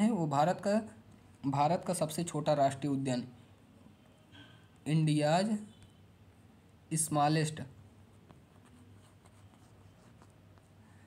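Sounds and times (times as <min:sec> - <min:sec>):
stylus scratching while writing: 0:08.1 - 0:10.8.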